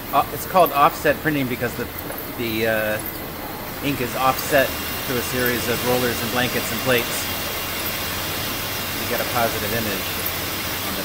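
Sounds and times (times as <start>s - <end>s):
printing press running: 0.0s - 11.0s.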